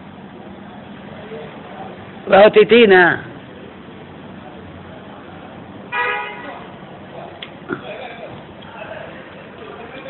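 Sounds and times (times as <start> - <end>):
faint street background: 0.0 - 10.0
vehicle horn steady tone: 5.9 - 6.7.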